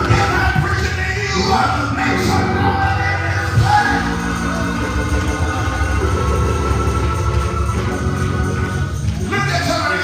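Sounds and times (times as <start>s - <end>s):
organ playing: 0.0s - 10.0s
drum kit playing: 2.2s - 9.3s.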